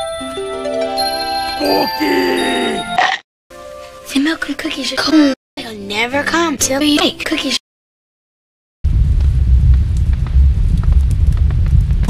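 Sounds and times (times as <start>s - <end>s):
low rumble of fire: 8.8s - 12.0s
fire crackling and popping: 8.9s - 12.0s.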